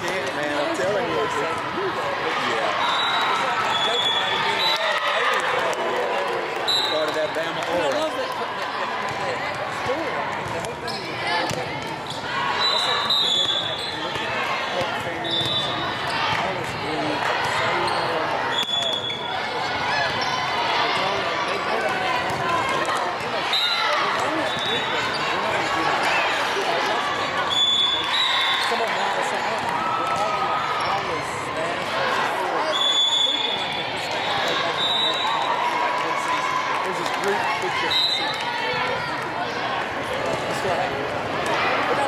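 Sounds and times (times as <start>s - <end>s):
overlapping voices of players: 0.0s - 12.0s, 33.5s - 42.0s
volleyballs struck and bouncing: 11.4s - 12.0s.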